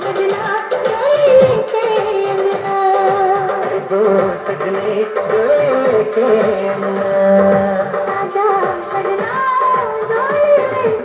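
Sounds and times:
person singing: 0.0s - 11.0s
rhythmic percussion beat: 0.0s - 11.0s.

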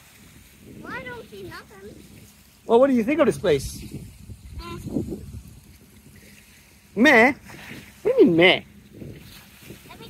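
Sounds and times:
small waves lapping: 0.0s - 10.0s
low rumble on microphone: 3.3s - 6.5s.

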